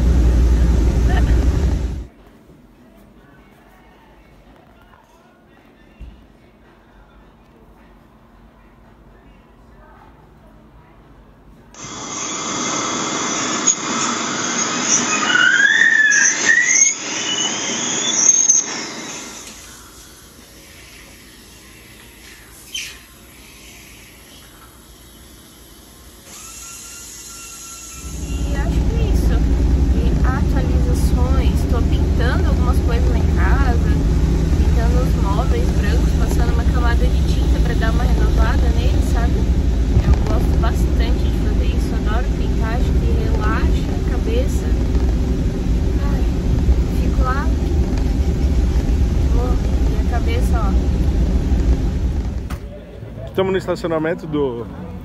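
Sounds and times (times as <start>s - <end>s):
road rumble inside a car: 0.0s - 2.1s, 28.1s - 52.8s
dental equipment squealing: 11.8s - 24.5s, 26.3s - 28.6s.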